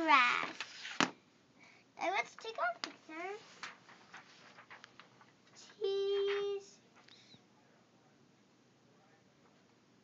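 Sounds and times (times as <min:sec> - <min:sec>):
faint rustling: 0:02.3 - 0:07.4
boy singing a steady note: 0:05.6 - 0:07.4.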